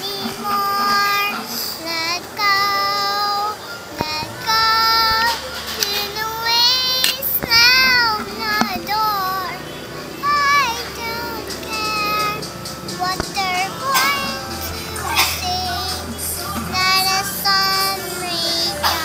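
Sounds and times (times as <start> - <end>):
girl singing high notes: 0.0 - 19.0.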